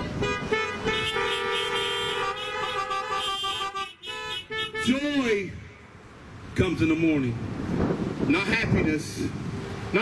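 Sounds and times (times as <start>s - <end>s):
car horns honking: 0.0s - 6.0s.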